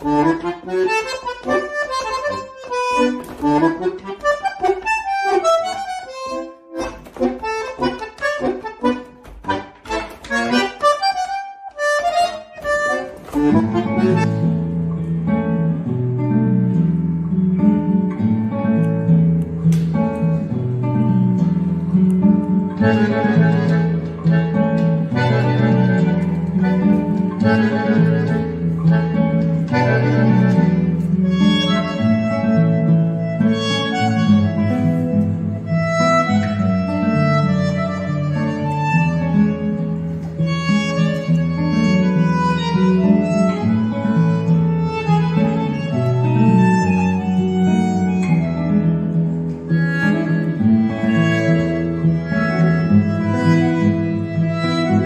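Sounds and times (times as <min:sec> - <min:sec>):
short detached notes: 0:00.0 - 0:15.2
bandoneon chords: 0:00.0 - 0:55.0
classical guitar chords: 0:00.0 - 0:55.0.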